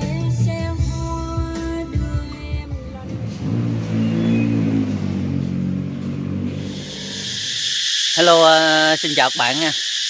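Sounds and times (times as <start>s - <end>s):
vehicle engine revving: 0.9s - 7.8s.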